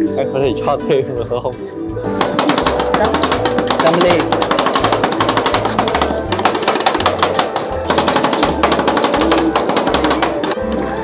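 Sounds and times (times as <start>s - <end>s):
background music with steady beat: 0.0s - 11.0s
metal spatulas chopping on steel plate: 2.2s - 10.6s.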